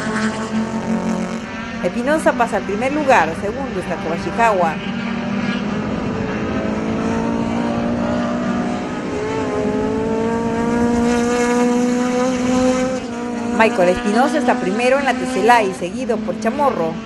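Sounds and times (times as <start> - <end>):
race car engines at high revs: 0.0 - 17.0.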